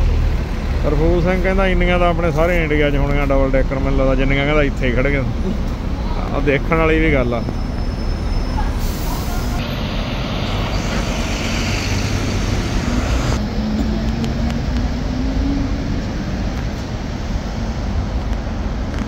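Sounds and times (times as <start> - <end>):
city street traffic: 0.0 - 19.0
engine note rising: 8.8 - 16.6.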